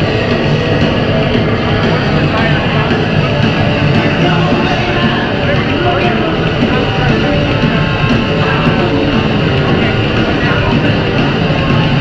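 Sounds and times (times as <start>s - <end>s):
punk band playing: 0.0s - 12.0s.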